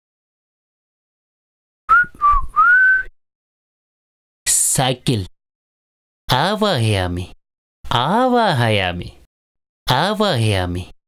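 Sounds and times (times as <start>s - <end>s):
person whistling: 1.9s - 3.1s.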